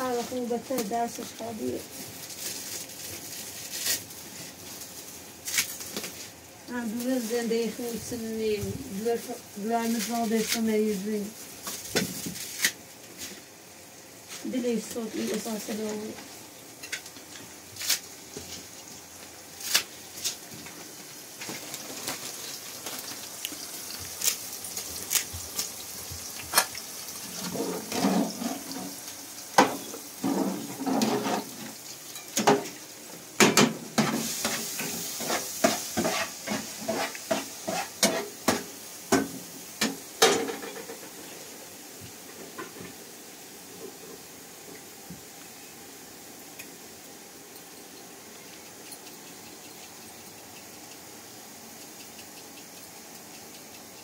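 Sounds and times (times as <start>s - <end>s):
food sizzling: 0.0s - 54.0s
metal utensil scraping pots: 27.4s - 29.0s, 30.2s - 32.6s.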